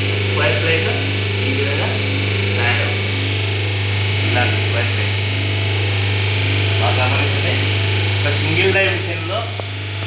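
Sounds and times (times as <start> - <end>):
machine electric hum: 0.0 - 10.0.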